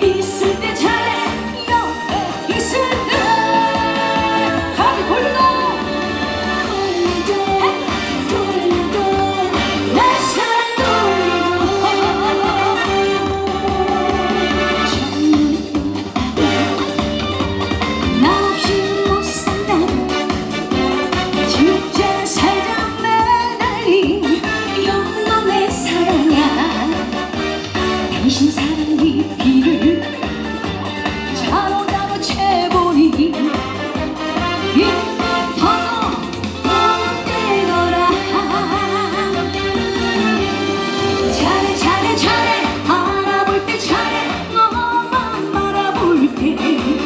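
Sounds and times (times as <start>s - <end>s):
woman singing into microphone: 0.0s - 16.7s, 18.1s - 20.1s, 21.5s - 27.2s, 28.2s - 30.1s, 31.4s - 33.6s, 34.7s - 40.4s, 41.3s - 47.0s
amplified pop music with beat: 0.0s - 47.0s.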